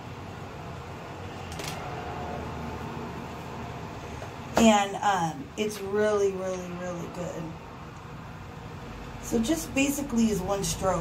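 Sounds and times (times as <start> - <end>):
room noise hum: 0.0 - 11.0.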